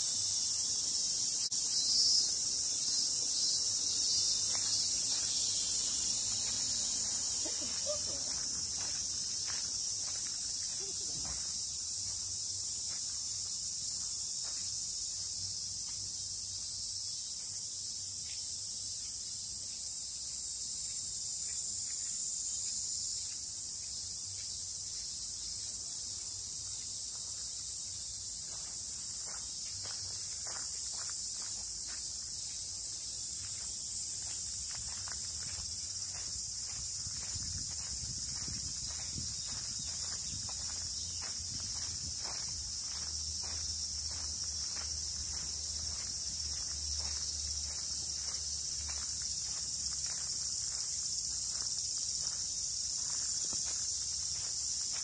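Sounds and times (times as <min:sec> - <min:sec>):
insects shrilling: 0:00.0 - 0:19.4
insect chorus shrilling: 0:00.0 - 0:55.0
faint footsteps: 0:03.9 - 0:16.1, 0:28.4 - 0:55.0.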